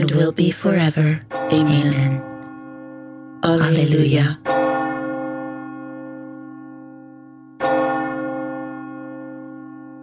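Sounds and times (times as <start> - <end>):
bell ringing: 1.3 - 10.0.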